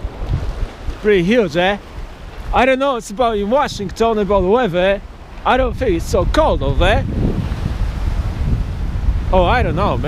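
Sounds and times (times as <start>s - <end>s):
small sea waves washing: 0.0s - 10.0s
wind buffeting microphone: 0.0s - 10.0s.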